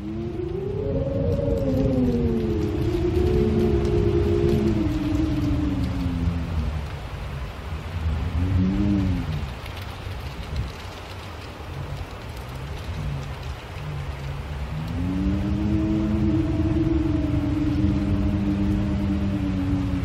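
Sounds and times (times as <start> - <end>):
rain hiss: 0.0 - 20.0
wind howling: 0.0 - 20.0.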